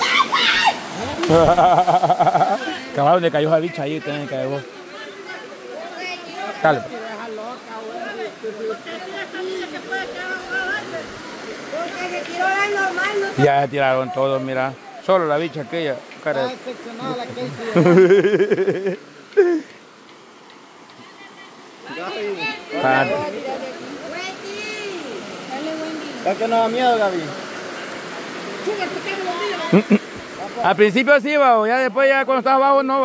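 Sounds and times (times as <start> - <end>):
people chattering: 0.0 - 19.8, 20.9 - 30.8
people calling and talking: 0.0 - 31.0
river rushing: 0.0 - 33.0.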